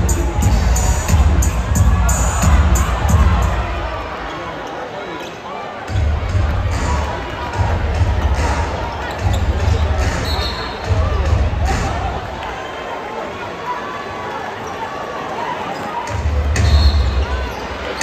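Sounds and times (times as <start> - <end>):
crowd chatter: 0.0 - 18.0
sneakers squeaking: 2.4 - 6.9, 7.5 - 11.9, 15.6 - 18.0.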